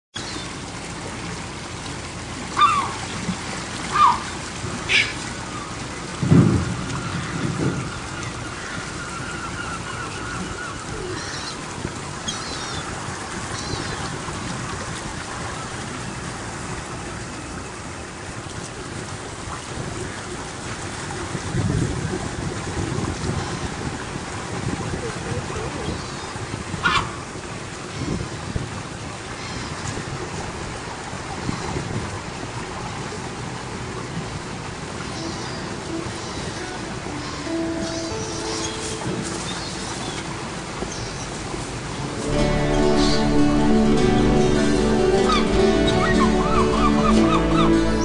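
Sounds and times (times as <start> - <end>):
wind on microphone: 5.8 - 9.0, 20.8 - 32.8.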